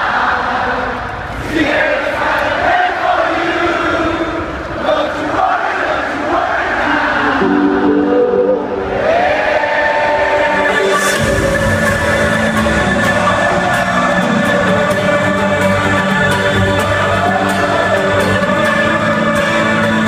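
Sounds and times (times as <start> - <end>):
crowd shouting: 1.6 - 11.0, 12.5 - 19.4
electronic dance music: 7.3 - 9.5
rising synth sweep: 7.4 - 9.8
synth melody: 7.4 - 9.8.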